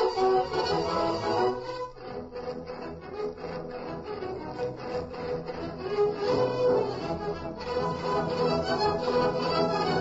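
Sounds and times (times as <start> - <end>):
orchestral strings music: 0.0 - 10.0.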